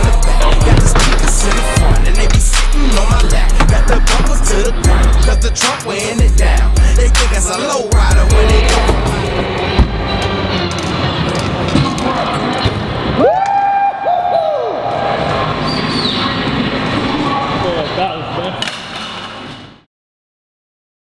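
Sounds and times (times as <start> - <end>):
hip hop song with vocals: 0.0 - 10.4.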